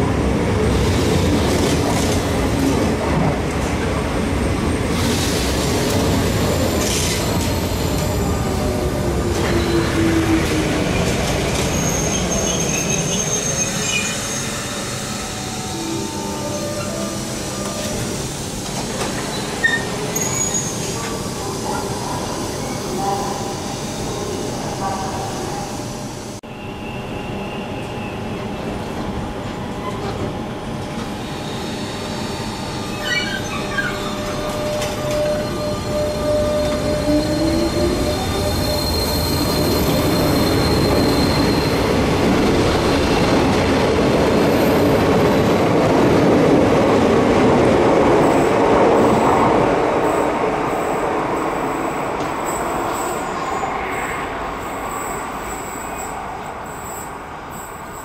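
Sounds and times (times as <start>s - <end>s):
train wheels squealing: 9.4s - 10.6s, 11.6s - 24.5s, 31.2s - 42.0s, 50.1s - 58.0s.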